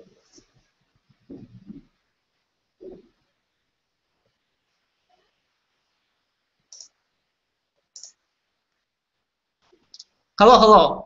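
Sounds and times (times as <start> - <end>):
computer mouse clicks: 6.7 - 7.0, 7.9 - 8.2.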